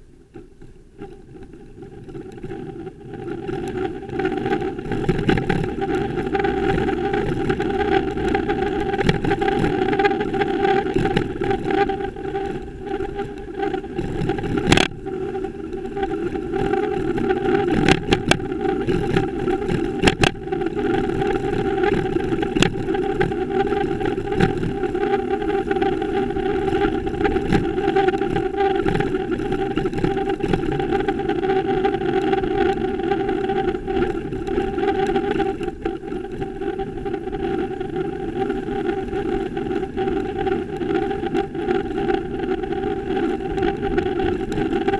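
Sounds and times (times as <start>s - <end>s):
steady hum: 0.0s - 44.9s
wind noise: 0.0s - 44.9s
road noise: 1.0s - 44.9s.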